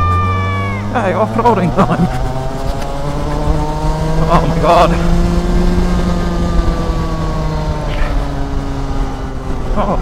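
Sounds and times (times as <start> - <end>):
go-kart engine running: 0.0 - 10.0
wind rumbling on microphone: 1.7 - 10.0.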